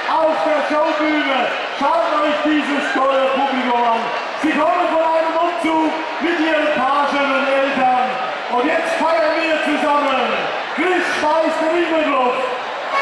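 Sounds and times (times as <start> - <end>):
man announcing over pa system: 0.0 - 13.0.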